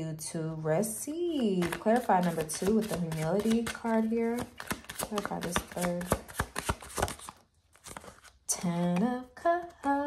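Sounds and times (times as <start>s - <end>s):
cards being shuffled: 1.6s - 8.5s.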